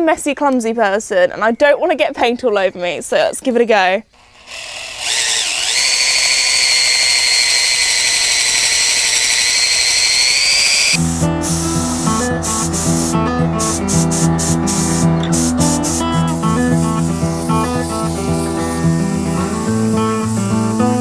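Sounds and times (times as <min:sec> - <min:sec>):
drill whining stirring paint: 0:04.2 - 0:11.8, 0:13.8 - 0:21.0
acoustic guitar music: 0:11.0 - 0:21.0.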